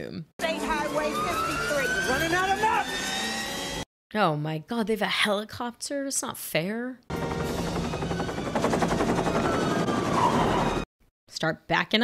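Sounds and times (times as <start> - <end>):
helicopter rotor chopping: 7.1 - 10.9.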